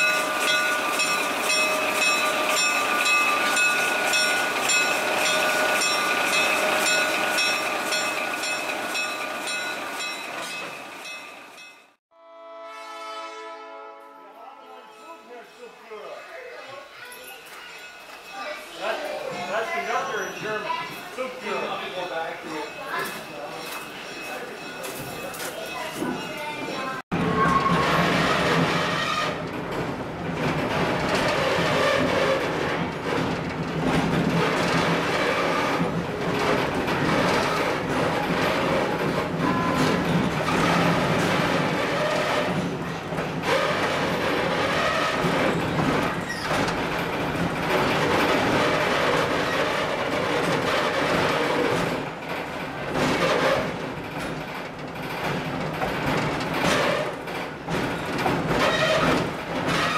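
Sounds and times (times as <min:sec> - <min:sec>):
diesel locomotive running: 0:00.0 - 0:12.0, 0:19.1 - 0:59.9
train wheels rolling on rails: 0:00.0 - 0:12.0, 0:16.6 - 0:59.9.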